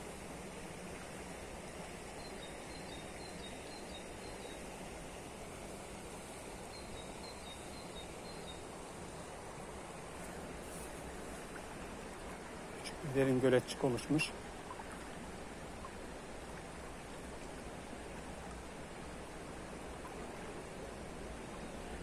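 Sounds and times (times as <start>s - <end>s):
river water rushing over stones: 7.5s - 22.0s.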